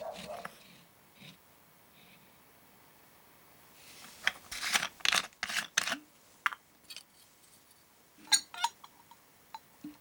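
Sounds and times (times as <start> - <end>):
spoon clinking on glass jar: 8.3 - 9.7.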